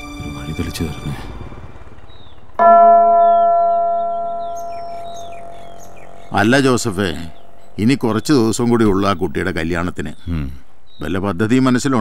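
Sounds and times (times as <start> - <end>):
church bell ringing: 0.0 - 8.3.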